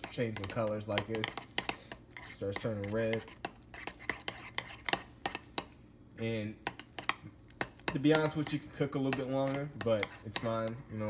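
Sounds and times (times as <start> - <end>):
fork stirring thick oatmeal: 0.0 - 11.0.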